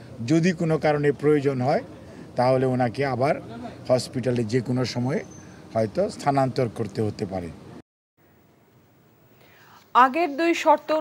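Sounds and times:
faint breath: 2.0 - 2.4, 5.4 - 5.7, 9.3 - 9.9.

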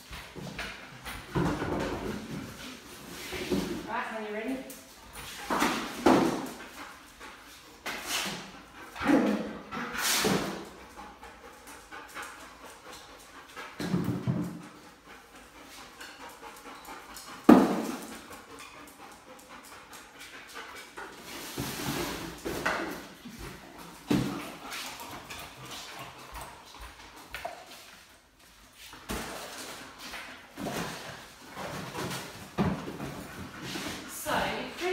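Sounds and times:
dog breathing and moving: 0.0 - 34.9.

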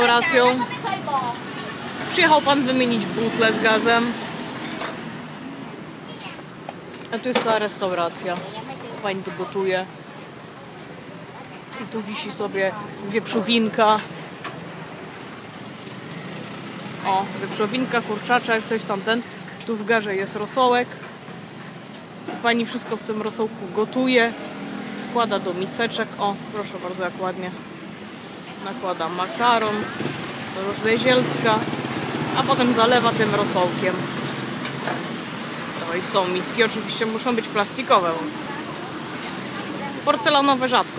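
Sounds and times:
busy eatery background noise: 0.0 - 40.9
faint voices: 35.8 - 40.9.

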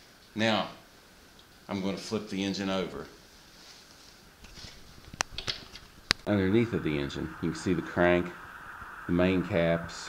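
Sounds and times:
faint shuffling: 3.0 - 5.2.

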